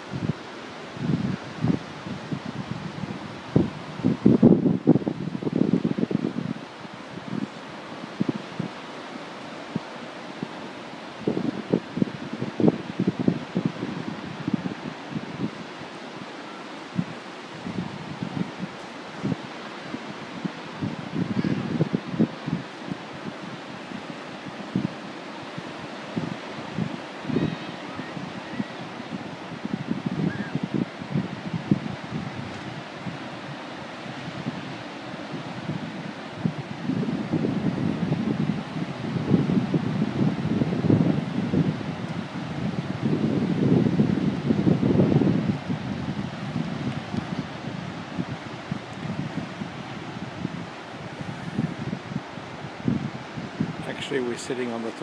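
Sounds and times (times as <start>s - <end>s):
surf hissing: 0.0s - 55.0s
wind buffeting microphone: 0.0s - 55.0s.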